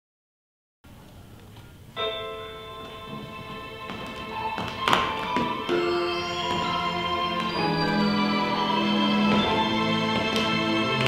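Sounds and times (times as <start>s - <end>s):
recorded music sustained notes: 1.7s - 11.0s
tap shoes on wooden floor: 2.8s - 11.0s.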